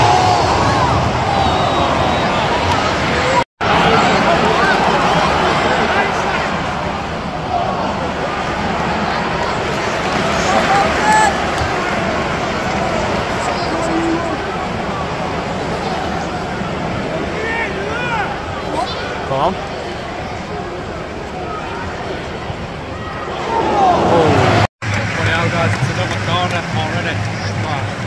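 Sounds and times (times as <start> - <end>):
crowd shouts: 0.0 - 19.3, 21.4 - 24.7
stadium crowd din: 0.0 - 28.0.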